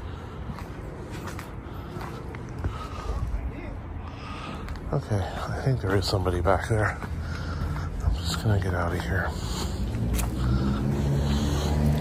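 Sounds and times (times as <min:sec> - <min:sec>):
footsteps on dirt: 0:00.0 - 0:03.3, 0:04.4 - 0:12.0.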